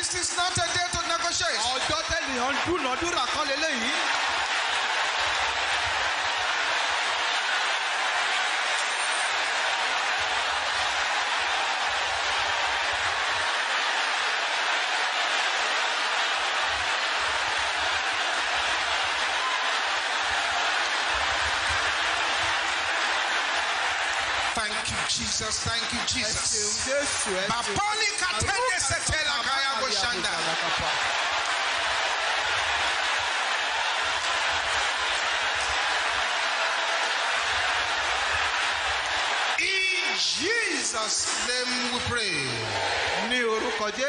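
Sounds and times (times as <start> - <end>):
congregation clapping: 0.0 - 44.0.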